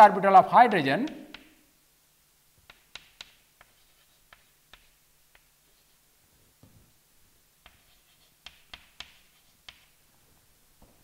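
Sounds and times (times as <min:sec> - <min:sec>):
chalk tapping on blackboard: 0:01.0 - 0:01.6, 0:02.6 - 0:06.0, 0:07.6 - 0:10.0.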